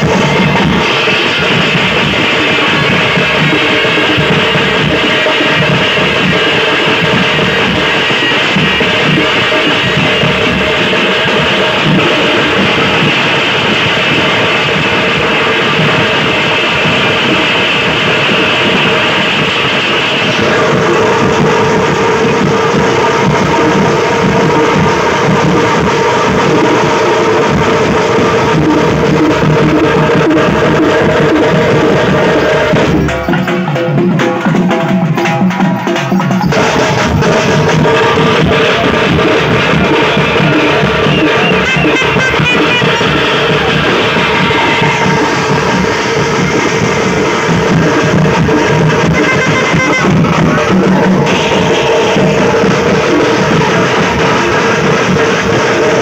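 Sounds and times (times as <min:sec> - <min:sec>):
frame drums playing fast rhythms: 0:00.0 - 0:56.0.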